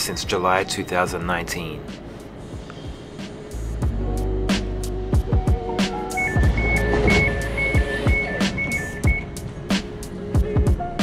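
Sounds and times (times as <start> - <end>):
background music with steady beat: 0.0 - 11.0
two-tone door warning beeps: 6.1 - 9.4.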